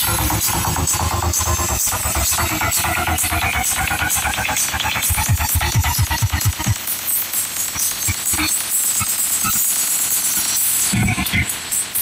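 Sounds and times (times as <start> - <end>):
electronic dance music with heavy bass: 0.0 - 10.0, 10.7 - 12.0.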